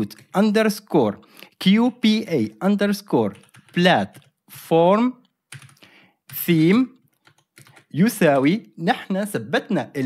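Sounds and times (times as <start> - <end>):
computer keyboard typing: 0.0 - 0.5, 3.2 - 8.4.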